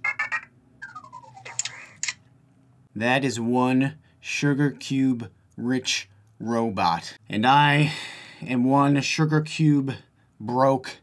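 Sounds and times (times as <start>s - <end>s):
robot chirping beeps: 0.0s - 2.0s.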